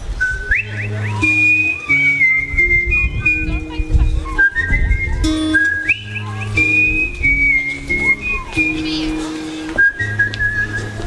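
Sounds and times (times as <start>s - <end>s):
whistled melody: 0.0s - 11.0s
acoustic guitar picking: 0.2s - 11.0s.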